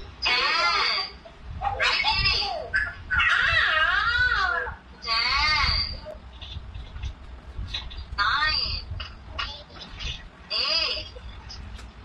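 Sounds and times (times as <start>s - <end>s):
young child's wavering voice: 0.2s - 6.2s.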